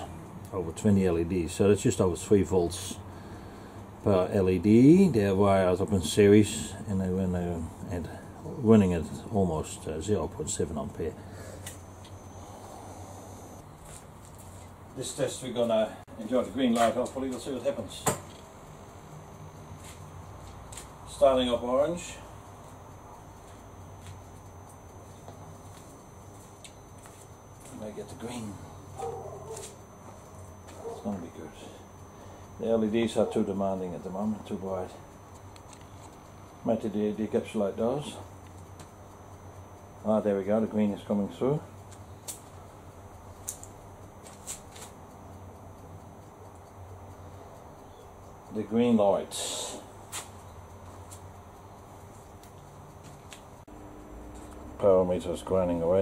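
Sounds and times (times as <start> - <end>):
low electrical hum: 0.0 - 56.0
faint ticks: 34.9 - 54.6.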